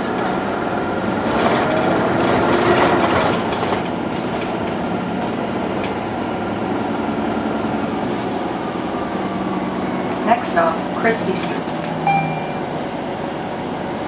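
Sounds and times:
streetcar wheels rumbling on rail: 0:00.0 - 0:14.0.

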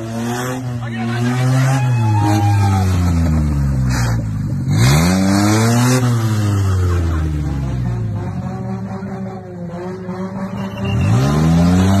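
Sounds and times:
van engine revving: 0:00.0 - 0:12.0.

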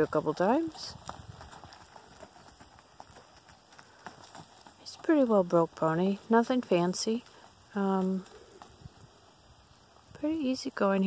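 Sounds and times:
hooves trotting on soft dirt: 0:00.0 - 0:11.0.

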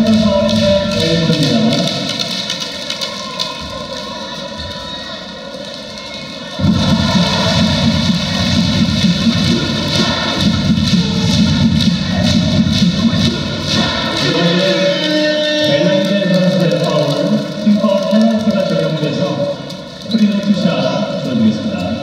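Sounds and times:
loud crowd noise: 0:00.0 - 0:22.0
music over loudspeakers: 0:00.0 - 0:22.0.

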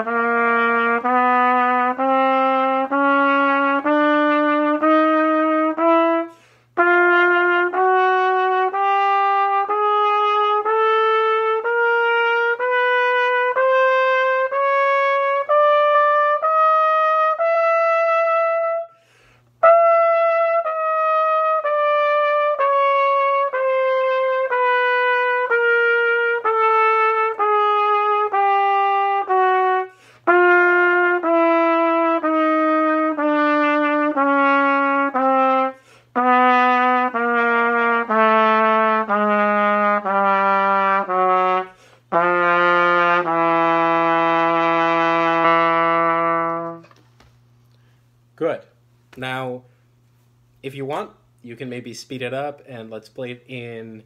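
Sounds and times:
trumpet playing chromatic scale: 0:00.0 - 0:47.0.

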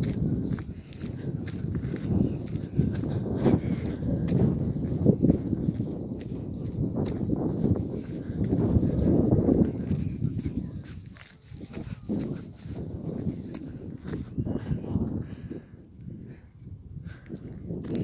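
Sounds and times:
footsteps on dirt track: 0:00.0 - 0:18.0
wind rumble on microphone: 0:00.0 - 0:18.0.

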